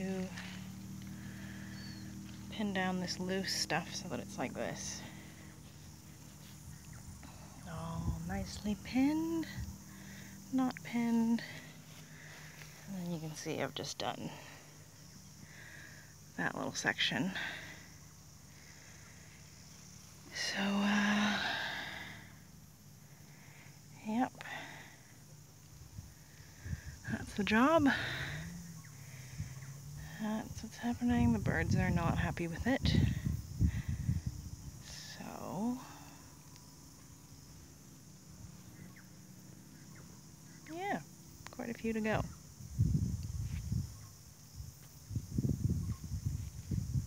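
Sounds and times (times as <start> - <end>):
faint steady hiss: 0.0 - 47.0
footsteps on grass: 5.6 - 6.9.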